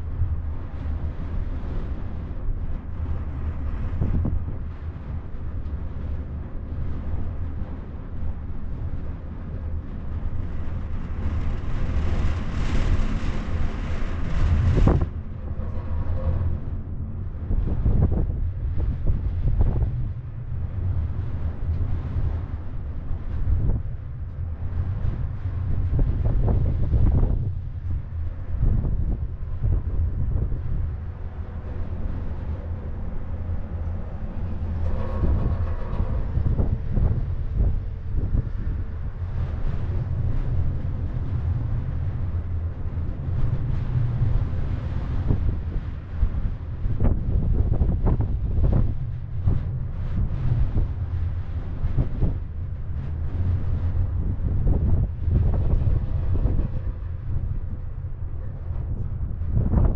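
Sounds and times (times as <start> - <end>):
gondola cabin low rumble: 0.0 - 59.9
wind noise: 0.0 - 59.9.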